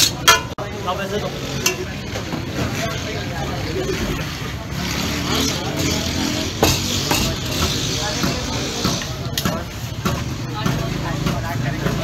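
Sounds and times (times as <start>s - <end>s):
traffic: 0.0s - 12.0s
voices: 0.0s - 12.0s.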